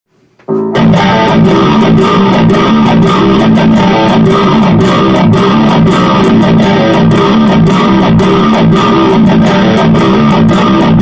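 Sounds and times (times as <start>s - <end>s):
distorted electric guitar riff: 0.5s - 11.0s.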